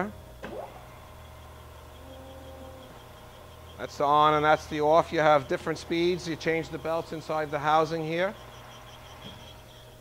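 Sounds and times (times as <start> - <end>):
grinder motor whine and hum: 0.0 - 10.0.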